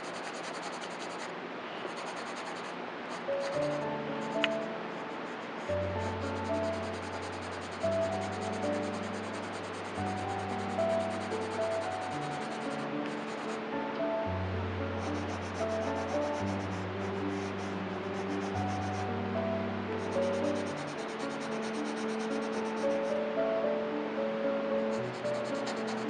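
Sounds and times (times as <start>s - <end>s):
calm background music: 0.0s - 1.2s, 1.8s - 26.0s
pencil shading on paper: 0.0s - 1.3s, 1.9s - 13.6s, 15.0s - 19.1s, 20.0s - 23.1s, 24.9s - 26.0s.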